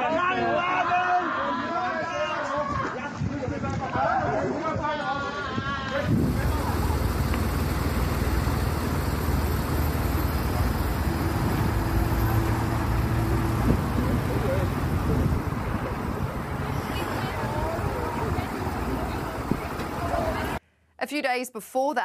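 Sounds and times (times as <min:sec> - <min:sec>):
indistinct voices: 0:04.0 - 0:20.6
road traffic noise: 0:06.0 - 0:20.6.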